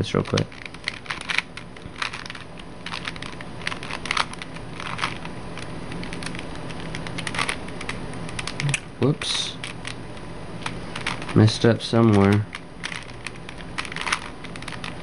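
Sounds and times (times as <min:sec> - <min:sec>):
plastic puzzle cube clicking: 0:00.2 - 0:08.8, 0:11.0 - 0:11.4, 0:12.1 - 0:14.9.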